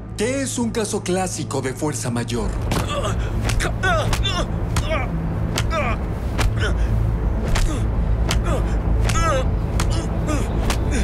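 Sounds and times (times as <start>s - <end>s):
punches landing: 2.7s - 6.8s, 7.4s - 11.0s.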